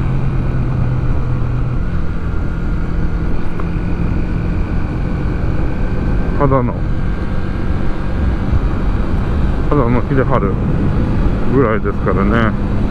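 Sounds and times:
motorcycle engine running: 0:00.0 - 0:12.9
wind on microphone: 0:07.6 - 0:09.7.

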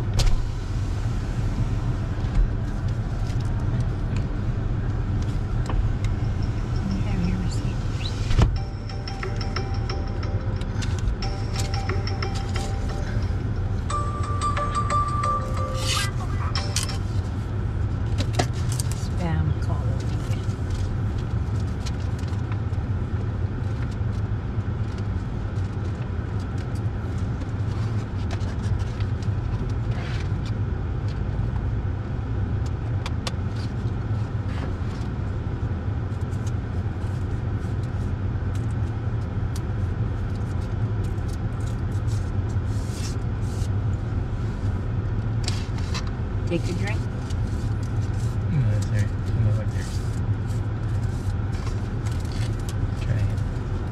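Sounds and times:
car engine idling: 0:00.0 - 0:53.9.

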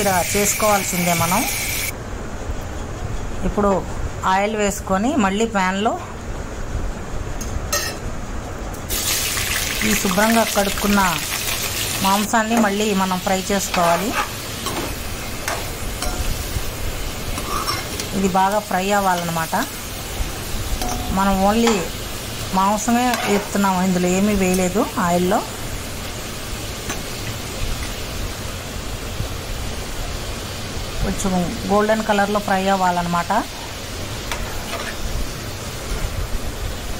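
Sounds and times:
food sizzling in hot oil: 0:00.0 - 0:01.9, 0:08.9 - 0:36.9.

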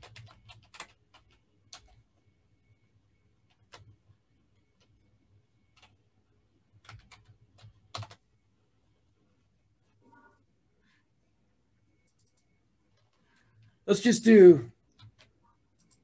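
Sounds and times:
keyboard keys tapped: 0:00.0 - 0:02.0, 0:06.8 - 0:08.2, 0:14.9 - 0:16.0.

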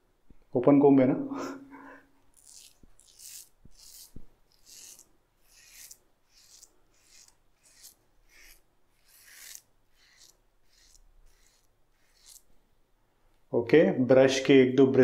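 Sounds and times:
razor scraping stubble: 0:02.2 - 0:12.6.

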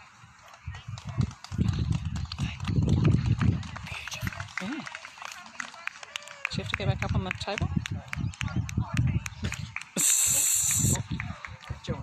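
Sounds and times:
wind buffeting microphone: 0:00.0 - 0:04.9, 0:06.2 - 0:12.0.

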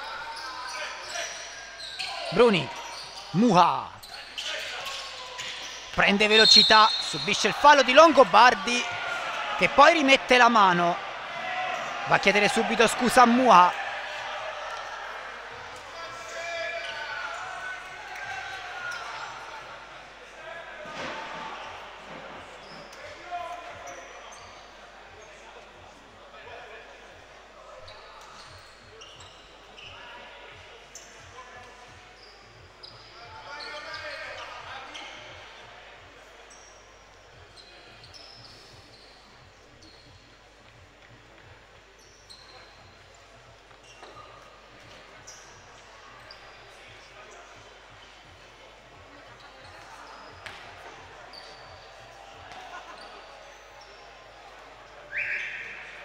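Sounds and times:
voices in echoing hall: 0:00.0 - 0:56.0
sneaker squeaks on court: 0:00.1 - 0:03.4, 0:04.0 - 0:08.6, 0:27.8 - 0:30.0, 0:37.6 - 0:40.3, 0:42.0 - 0:47.0, 0:49.3 - 0:54.1.

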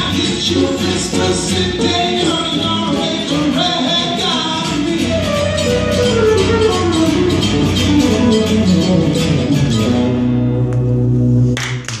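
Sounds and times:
band holding acoustic guitar chord: 0:00.0 - 0:11.9
audience applause: 0:11.6 - 0:12.0.

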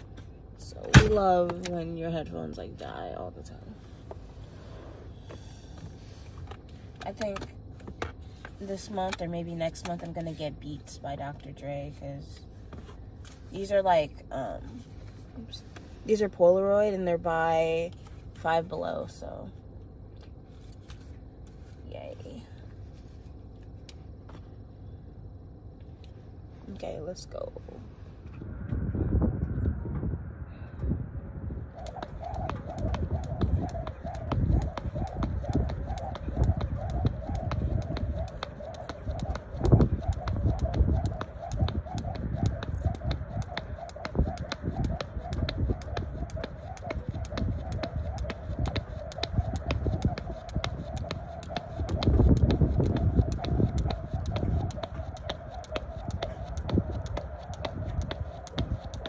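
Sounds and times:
steady wavering tone: 0:00.0 - 0:59.0
jump rope slapping the court: 0:31.8 - 0:59.0.

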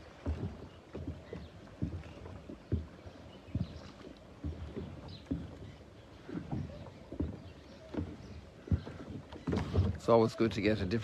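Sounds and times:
floating dock knocking: 0:00.0 - 0:11.0
water lapping: 0:00.0 - 0:11.0.

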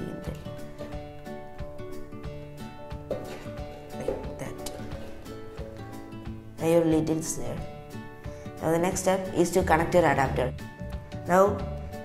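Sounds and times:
melodic music with percussive beat: 0:00.4 - 0:06.6.

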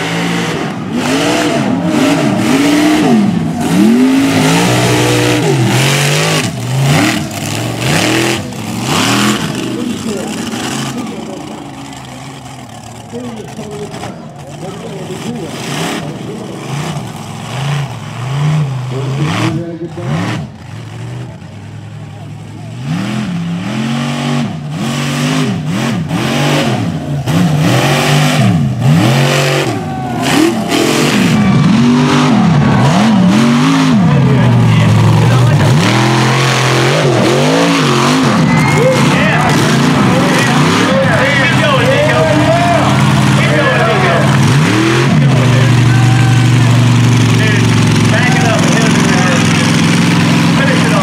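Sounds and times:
truck engine revving hard: 0:00.0 - 0:51.0.

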